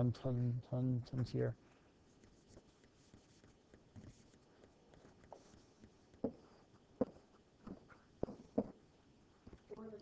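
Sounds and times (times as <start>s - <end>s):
stylus scratching and tapping screen: 1.0s - 10.0s.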